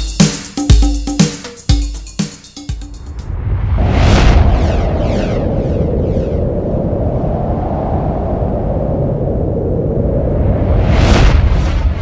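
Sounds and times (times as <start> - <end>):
whoosh: 2.8 - 12.0
low rumbling drone: 3.0 - 12.0.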